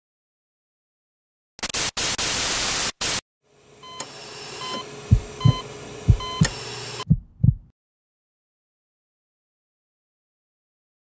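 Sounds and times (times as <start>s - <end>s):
loud static: 1.6s - 3.2s
low electronic hum: 5.0s - 7.7s
heartbeat thumping: 5.1s - 7.7s
short electronic beeps: 6.2s - 6.5s.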